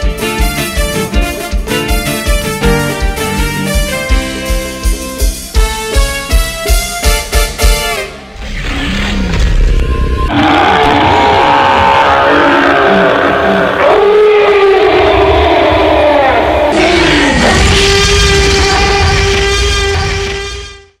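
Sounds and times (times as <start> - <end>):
live band music: 0.0 - 8.4.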